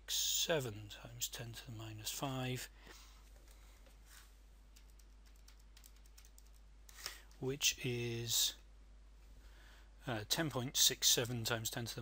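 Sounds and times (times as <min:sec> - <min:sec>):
faint irregular clicks: 0:04.7 - 0:07.4.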